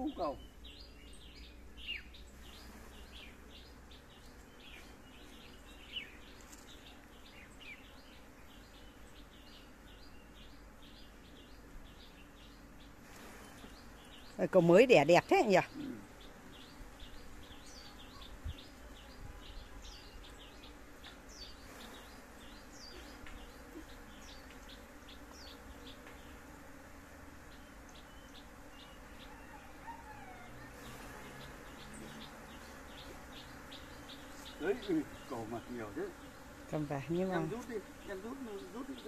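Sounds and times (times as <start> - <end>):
honeybees buzzing: 0.0 - 39.0
small birds chirping: 0.0 - 39.0.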